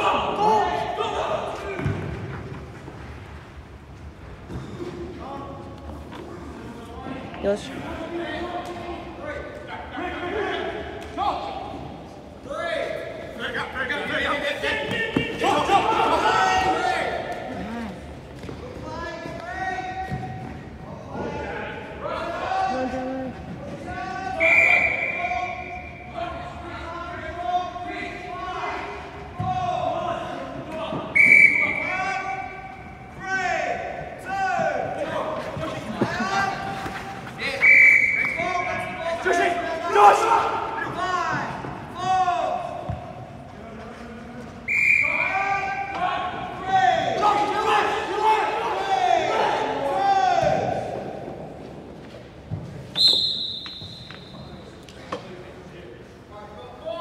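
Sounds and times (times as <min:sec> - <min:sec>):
players calling and shouting: 0:00.0 - 0:57.0.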